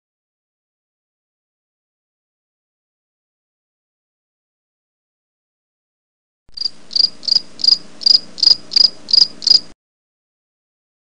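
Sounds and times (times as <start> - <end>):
cricket chirping: 6.6 - 9.7.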